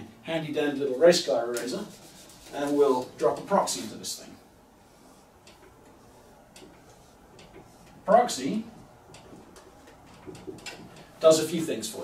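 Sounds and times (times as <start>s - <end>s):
marker drawing on whiteboard: 1.5s - 4.0s, 4.8s - 11.1s.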